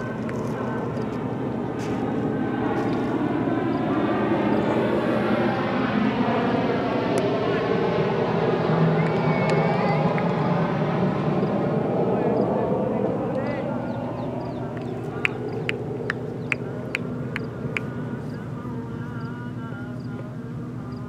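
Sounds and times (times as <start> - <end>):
loud engine drone: 0.0 - 21.0
voices: 0.0 - 21.0.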